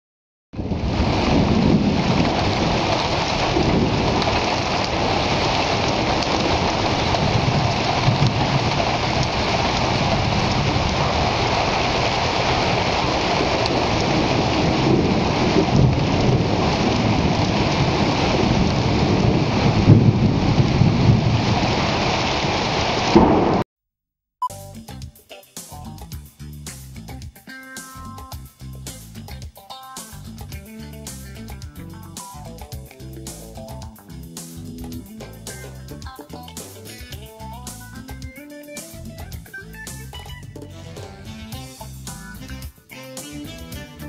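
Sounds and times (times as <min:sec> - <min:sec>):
heavy rain: 0:00.6 - 0:23.6, 0:40.0 - 0:42.7
thunder rumbling: 0:00.6 - 0:23.6.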